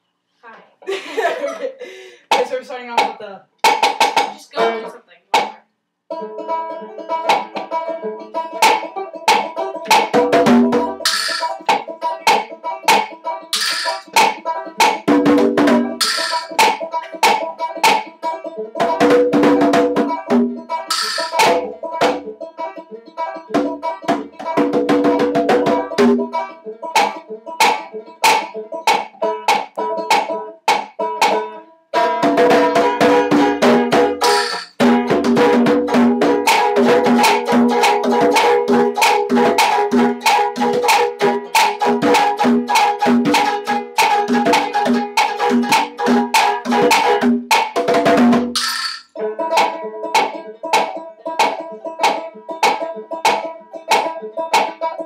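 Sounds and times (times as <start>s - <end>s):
conga drums: 2.3s - 5.6s, 7.2s - 7.8s, 8.5s - 22.3s, 23.5s - 31.4s, 32.0s - 54.9s
banjo playing: 2.3s - 55.0s.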